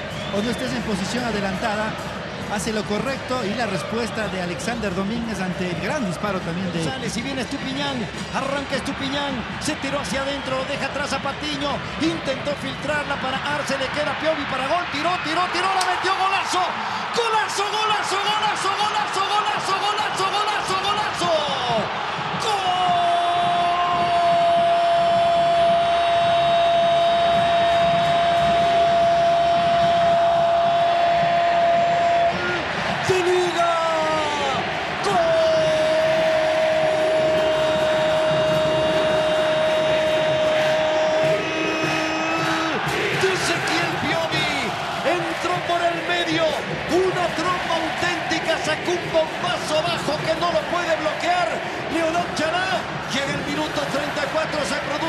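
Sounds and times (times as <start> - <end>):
commentator shouting goal cry: 13.1 - 55.0.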